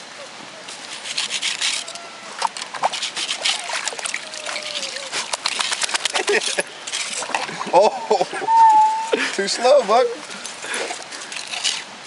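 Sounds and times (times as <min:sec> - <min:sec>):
water splashing in metal bucket: 0:02.4 - 0:07.8.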